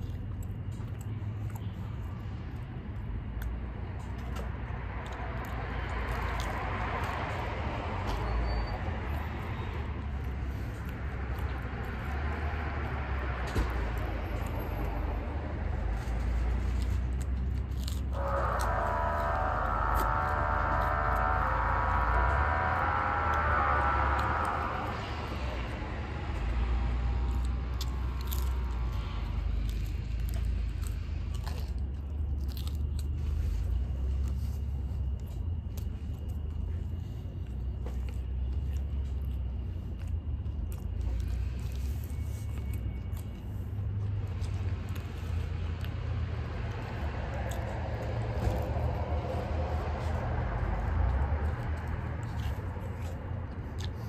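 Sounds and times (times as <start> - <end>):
person chewing pizza: 0.0 - 25.0, 25.7 - 54.0
hum: 0.0 - 54.0
low rumble of traffic: 0.0 - 54.0.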